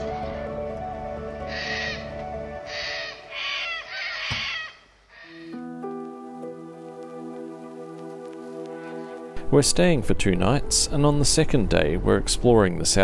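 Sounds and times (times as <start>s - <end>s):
background music with held notes: 0.0s - 3.6s, 5.3s - 13.0s
bird calls: 1.5s - 5.6s.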